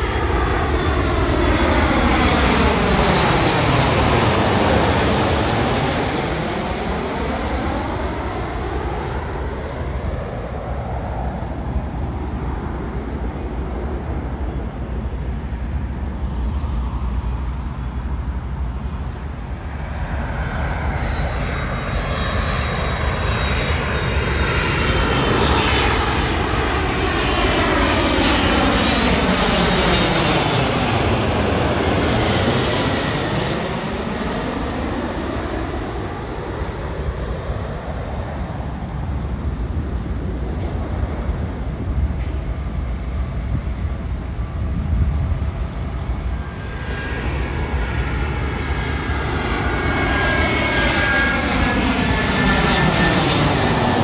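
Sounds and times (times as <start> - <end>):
jet airliner passing overhead: 0.0 - 54.0.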